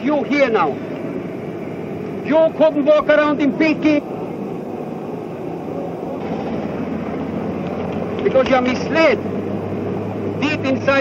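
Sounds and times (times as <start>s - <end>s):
outdoor background rumble and hiss: 0.0s - 11.0s.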